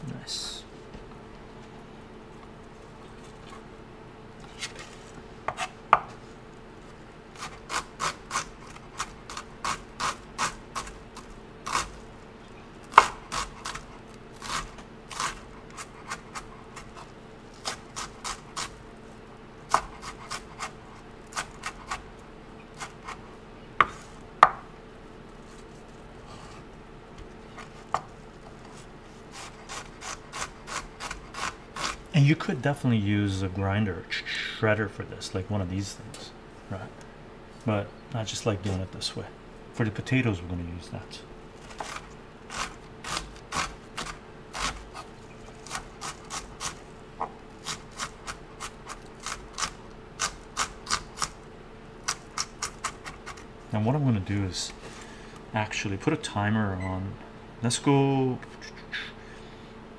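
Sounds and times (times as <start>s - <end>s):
knife chopping on wooden board: 12.9s - 13.8s, 19.7s - 22.0s, 23.8s - 24.6s.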